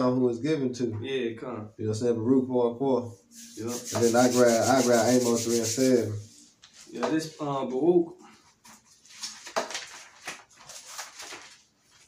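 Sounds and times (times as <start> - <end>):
pages flipping: 8.6 - 12.0.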